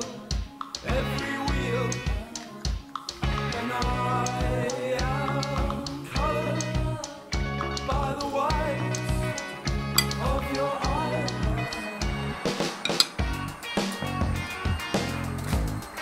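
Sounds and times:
background music with steady beat: 0.0s - 16.0s
knife clinking on ceramic plate: 10.0s - 10.2s, 12.8s - 13.2s.

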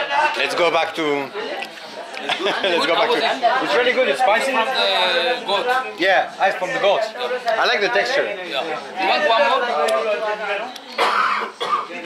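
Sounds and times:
person coughing: 11.0s - 11.9s.

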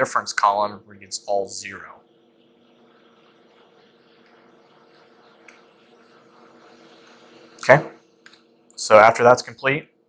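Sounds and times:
robot arm servo hum: 1.0s - 8.5s.

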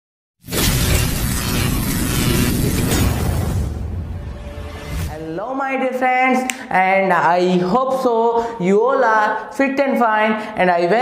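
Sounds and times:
loud burst of hissing noise: 0.4s - 4.1s.

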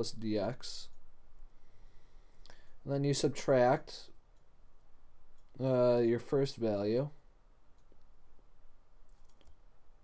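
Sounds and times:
low steady room hum: 0.0s - 10.0s
computer mouse clicks: 9.1s - 9.6s.

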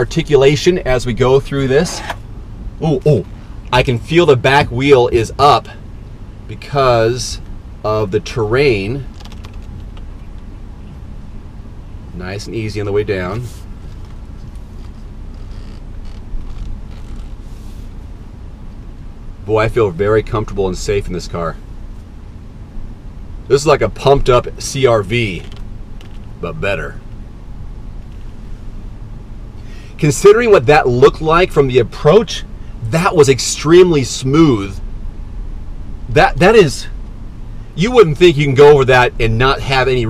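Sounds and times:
vehicle rumbling on dirt: 0.0s - 22.2s, 23.5s - 40.0s
suspension clicks: 1.6s - 2.3s, 9.0s - 11.0s, 13.3s - 17.6s, 25.2s - 26.4s, 28.0s - 28.4s.

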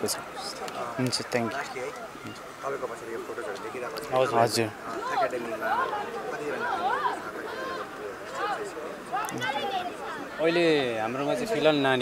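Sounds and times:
background voices chattering: 0.0s - 12.0s.

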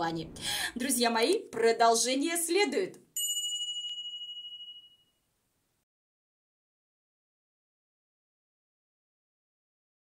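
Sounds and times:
bright high ding: 3.2s - 5.3s.

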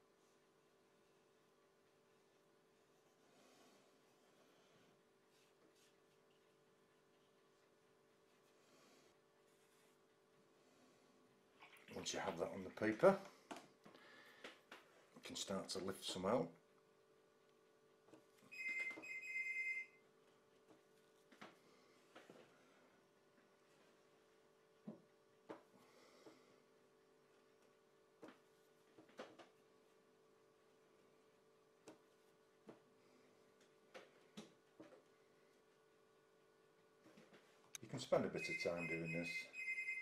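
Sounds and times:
faint steady hum: 0.0s - 40.0s
high electronic ringing tone: 18.5s - 20.0s, 38.4s - 40.0s.

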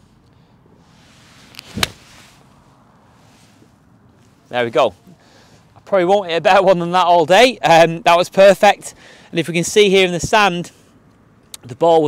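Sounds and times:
golf club striking ball: 1.6s - 2.0s.

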